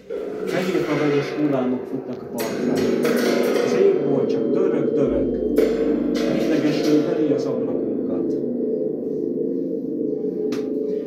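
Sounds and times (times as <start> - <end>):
singing bowls ringing: 0.0 - 11.0.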